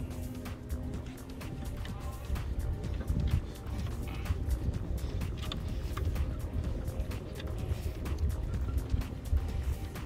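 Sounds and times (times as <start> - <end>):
faint music: 0.0 - 10.0
wind rumbling on microphone: 0.0 - 10.0.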